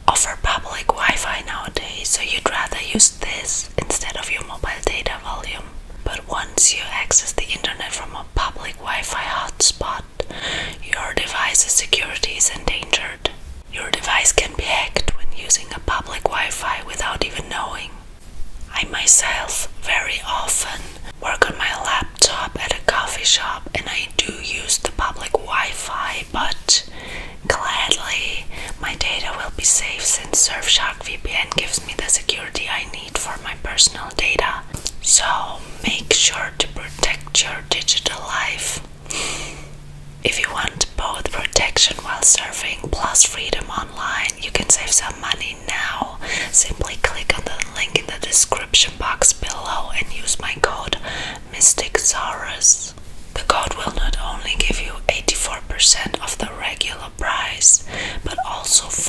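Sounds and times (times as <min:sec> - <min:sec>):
woman whispering: 0:00.0 - 0:18.1, 0:18.7 - 0:38.9, 0:40.2 - 0:59.0.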